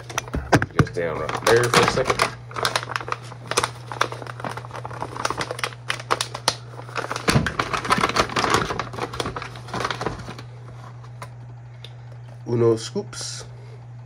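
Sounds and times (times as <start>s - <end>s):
plastic packaging crinkling: 0.0s - 11.2s.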